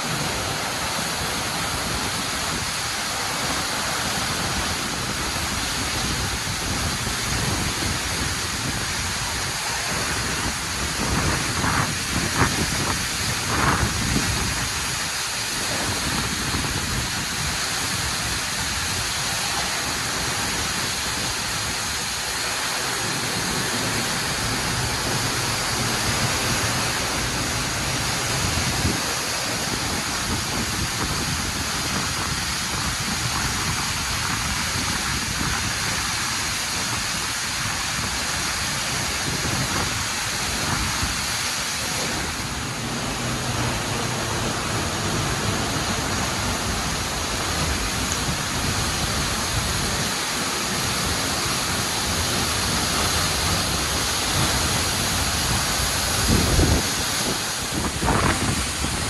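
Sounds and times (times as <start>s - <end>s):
waterfall crashing into pool: 0.0s - 59.0s.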